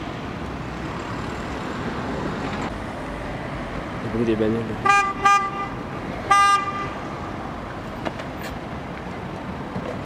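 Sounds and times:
road traffic hum: 0:00.0 - 0:10.0.

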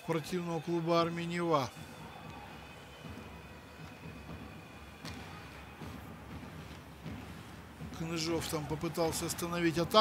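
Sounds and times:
low rink and crowd noise: 0:00.0 - 0:10.0.

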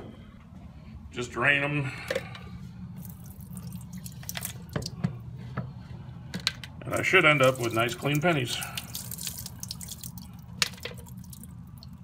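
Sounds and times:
water drips: 0:03.0 - 0:05.0, 0:06.9 - 0:12.0
liquid splashing into sink: 0:03.0 - 0:05.2, 0:07.0 - 0:12.0.

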